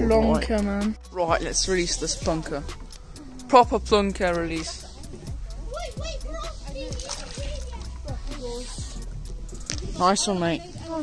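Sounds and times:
water sloshing at bank: 0:06.5 - 0:08.8
fish splashing into water: 0:06.9 - 0:07.7.

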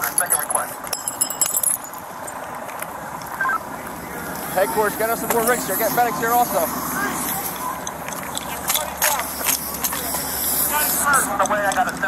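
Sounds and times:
small metal equipment jingling: 0:00.0 - 0:02.5
steady background noise: 0:00.0 - 0:12.0
indistinct voices: 0:02.8 - 0:12.0.

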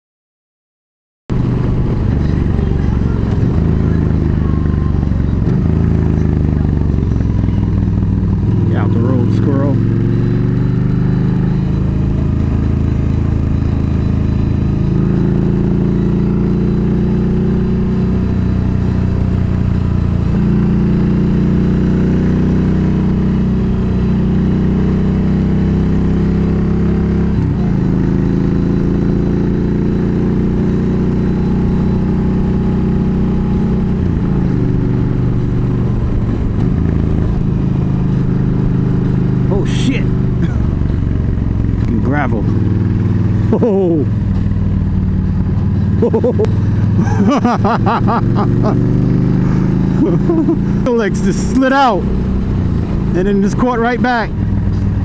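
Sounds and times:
motorcycle engine running: 0:01.3 - 0:55.0.

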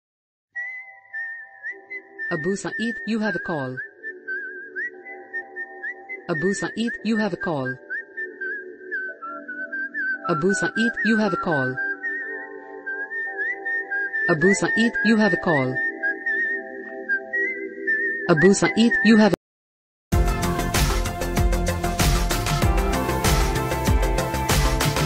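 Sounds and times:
whistled ringtone tune: 0:00.6 - 0:19.3
person making announcements: 0:02.3 - 0:03.8, 0:06.3 - 0:07.8, 0:10.3 - 0:11.9, 0:14.3 - 0:15.9, 0:18.3 - 0:19.4
held synth chord: 0:20.2 - 0:25.0.

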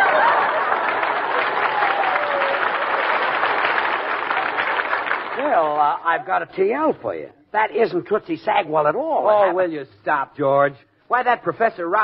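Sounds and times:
audience laughing: 0:00.0 - 0:01.7
audience applauding: 0:00.0 - 0:06.0.

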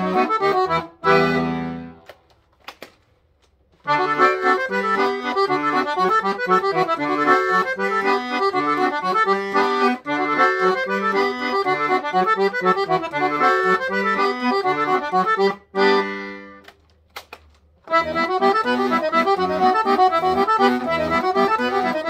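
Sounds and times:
piano accordion playing a tune: 0:00.0 - 0:02.0, 0:03.9 - 0:16.7, 0:17.9 - 0:22.0.

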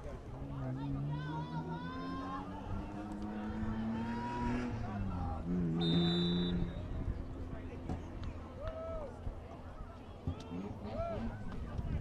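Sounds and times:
spectators talking: 0:00.0 - 0:12.0
referee's whistle blast: 0:05.8 - 0:06.8.

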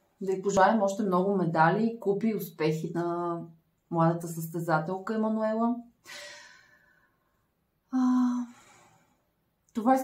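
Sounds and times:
woman sighing: 0:07.9 - 0:08.8.

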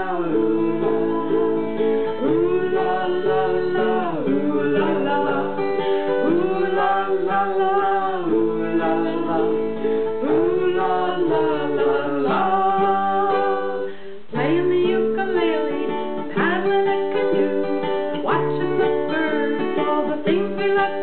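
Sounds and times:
strummed acoustic guitar: 0:00.0 - 0:21.0.

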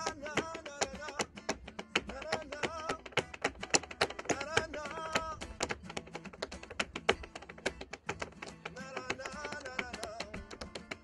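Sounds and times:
person singing: 0:00.0 - 0:06.8, 0:08.2 - 0:11.0
acoustic guitar: 0:00.0 - 0:11.0
tap shoes tapping on board: 0:00.0 - 0:11.0.

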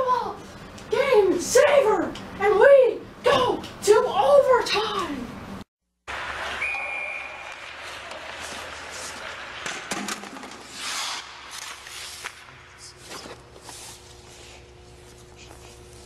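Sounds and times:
hockey pucks clattering onto ice: 0:08.4 - 0:10.8
knocks and scrapes in arena: 0:08.4 - 0:14.3.

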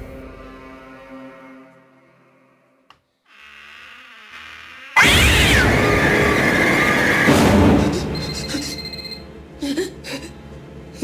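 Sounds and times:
loud jump-scare hit: 0:05.0 - 0:08.4.

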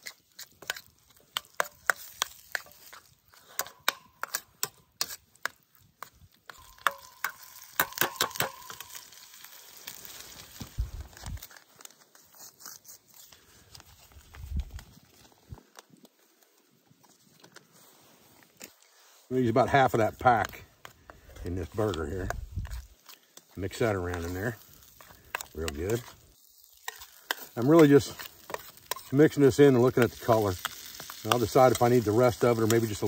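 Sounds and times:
metal spoon scraping skillet: 0:00.0 - 0:10.6, 0:20.0 - 0:33.0
light sizzle: 0:00.0 - 0:15.6, 0:17.3 - 0:33.0.

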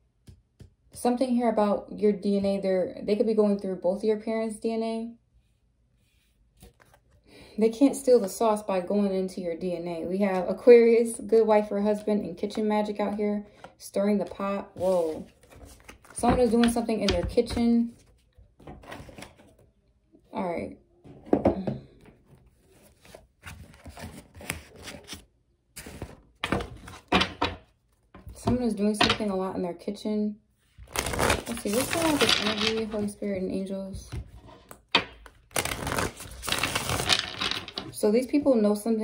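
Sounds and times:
cards clicking and rustling: 0:30.8 - 0:33.1, 0:34.7 - 0:37.9.

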